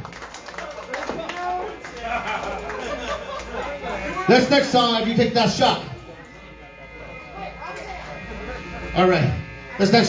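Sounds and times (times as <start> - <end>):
faint crowd chatter: 0.0 - 10.0
amplifier hum and buzz: 3.4 - 10.0.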